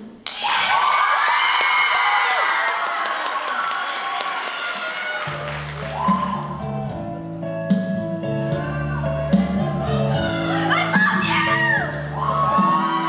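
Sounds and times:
audience clapping: 0.2 - 6.6
audience cheering and screaming: 0.3 - 6.8, 9.9 - 13.0
music with steady bass: 5.3 - 13.0.

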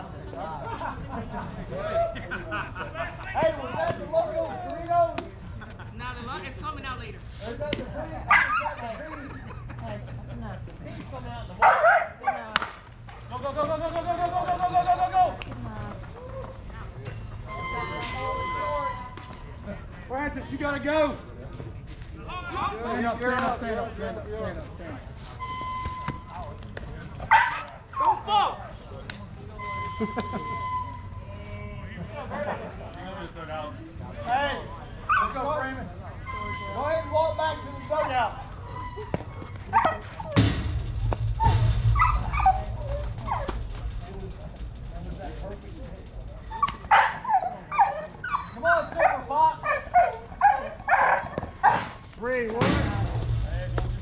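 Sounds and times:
people shouting and chattering: 0.0 - 54.0.

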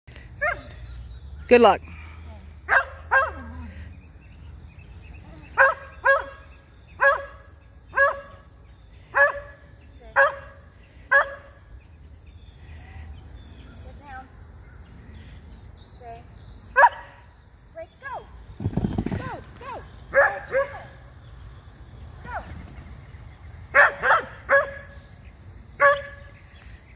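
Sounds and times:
high insect trill: 0.1 - 26.9
dog barking: 2.7 - 3.5, 5.6 - 6.4, 7.0 - 7.4, 8.0 - 8.4, 9.2 - 9.6, 10.2 - 11.5, 16.8 - 17.1, 20.1 - 20.9, 23.8 - 25.0, 25.8 - 26.2.

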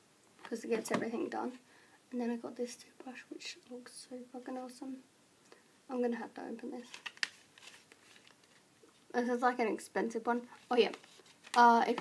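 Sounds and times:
faint packaging rustling: 6.5 - 9.2, 10.3 - 12.0
packaging crackling: 6.8 - 8.6.

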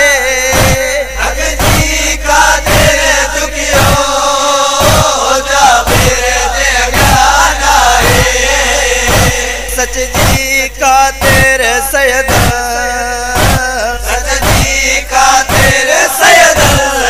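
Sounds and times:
chorus of voices chanting: 0.0 - 17.0
heavy beat: 0.0 - 17.0.

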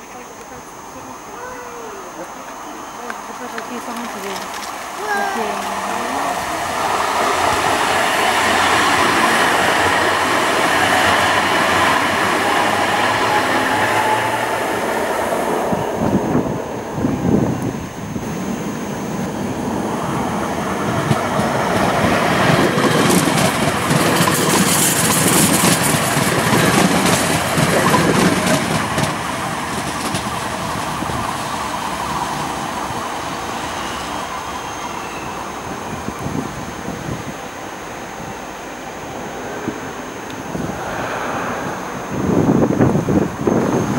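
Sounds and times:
tram rolling past: 0.0 - 43.9
wheels clicking on track: 1.4 - 16.2, 16.9 - 36.8
falling electric whine: 3.8 - 21.2, 38.9 - 43.9.

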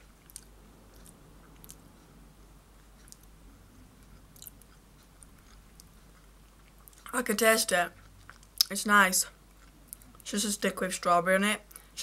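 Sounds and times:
chewing crunchy biscuit: 0.0 - 10.3.

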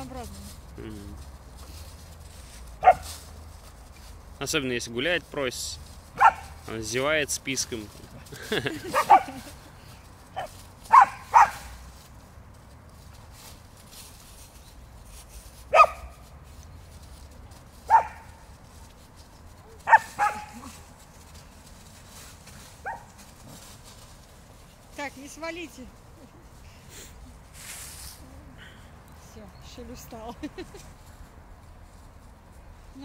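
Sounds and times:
dog barking: 2.8 - 3.1, 6.2 - 6.6, 8.9 - 9.4, 10.4 - 11.7, 15.7 - 16.2, 17.9 - 18.3, 19.8 - 20.6.

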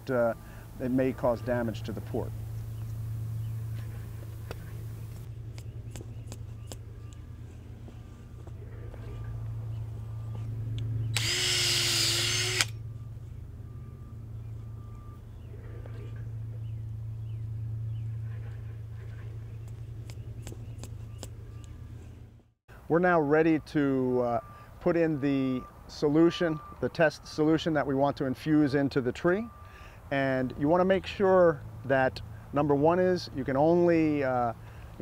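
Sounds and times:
steady low hum: 0.0 - 25.2
power drill boring into wood: 11.2 - 12.7.

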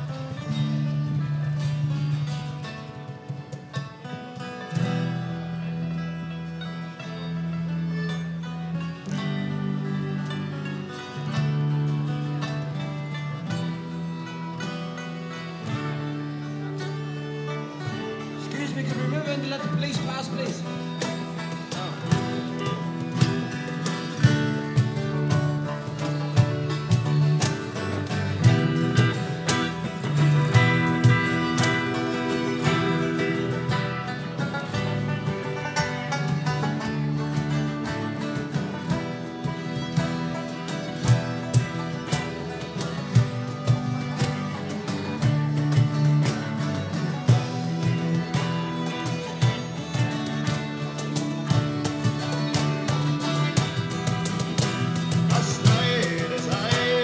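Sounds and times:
acoustic and electric guitars: 0.0 - 57.0
fiddle: 0.0 - 57.0
harmonica: 0.0 - 57.0
percussion hits: 10.2 - 57.0.

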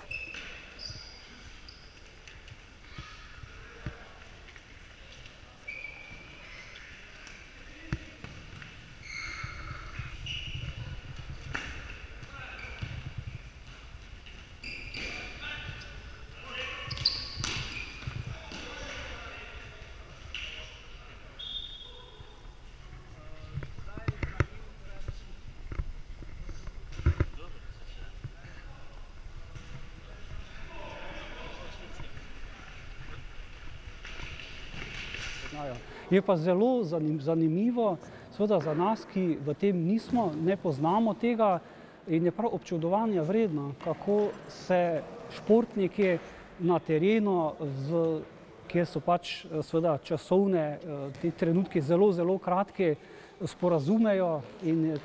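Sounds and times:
shoe squeaks on wooden floor: 0.0 - 2.2, 9.0 - 13.4, 14.6 - 16.0, 16.6 - 18.8.

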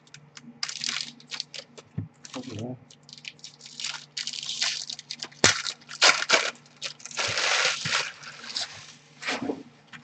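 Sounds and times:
card pack wrappers crinkling: 0.0 - 8.7.

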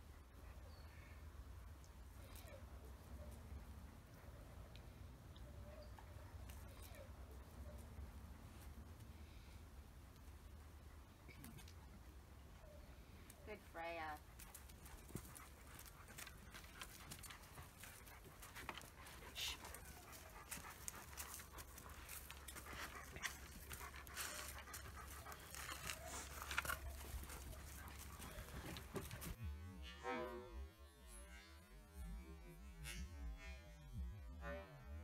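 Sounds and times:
dogs panting: 10.5 - 29.4.

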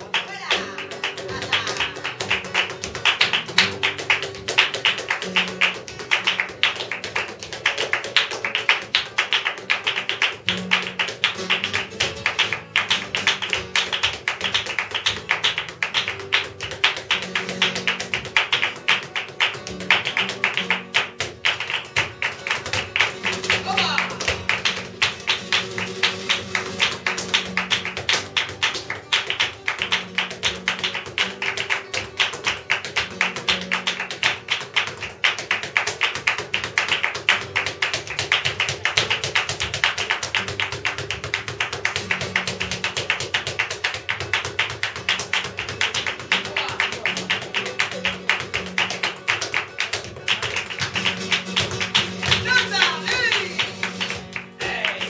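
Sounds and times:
guitar playing: 0.0 - 55.0
hand-clapping: 0.0 - 55.0.

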